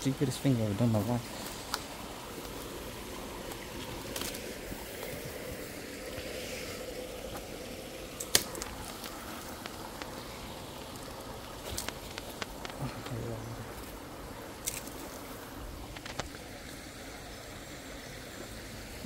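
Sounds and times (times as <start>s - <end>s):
undergrowth rustling underfoot: 0.0s - 16.7s
small stream running: 0.0s - 19.0s
twig snapping: 3.5s - 4.5s, 8.2s - 10.2s, 11.6s - 12.8s, 14.6s - 15.1s.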